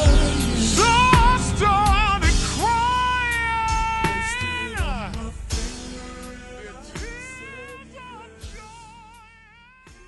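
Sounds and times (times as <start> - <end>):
backing track beat: 0.0 - 10.0
slowed r and b singing: 0.0 - 10.0.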